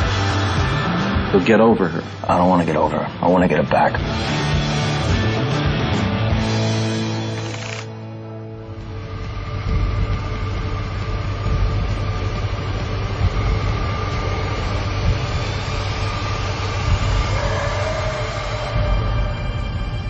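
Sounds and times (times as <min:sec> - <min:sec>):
loud continuous rumbling: 0:08.8 - 0:20.0.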